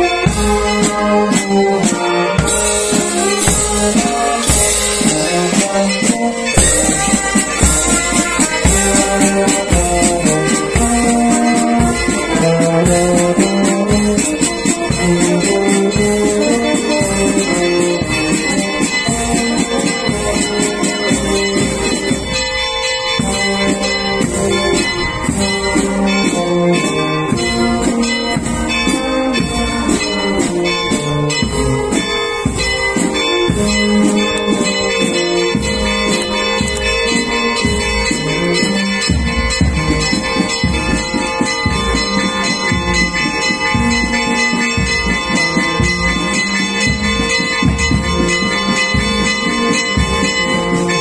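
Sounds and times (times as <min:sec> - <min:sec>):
bell-like ringing tone: 0:00.0 - 0:51.0
procession band music: 0:00.0 - 0:51.0.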